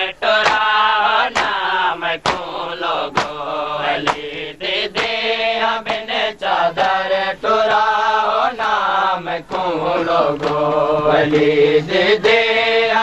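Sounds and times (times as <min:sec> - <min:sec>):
men chanting in chorus: 0:00.0 - 0:13.0
chest-beating slaps: 0:00.4 - 0:00.7, 0:01.3 - 0:01.6, 0:02.2 - 0:03.4, 0:04.0 - 0:05.2, 0:10.3 - 0:12.4.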